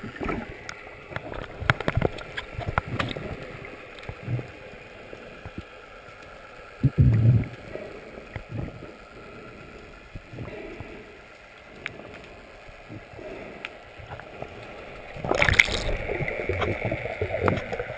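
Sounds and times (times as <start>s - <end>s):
water sloshing and splashing: 0.0s - 9.5s, 10.2s - 17.9s
crackling clicks: 0.1s - 4.6s, 10.1s - 17.9s.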